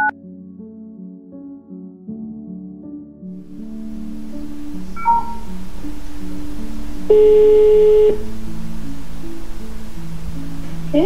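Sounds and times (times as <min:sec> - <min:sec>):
soft background music: 0:00.0 - 0:11.0
phone short beep: 0:05.0 - 0:05.4
phone ringing tone: 0:07.1 - 0:08.2.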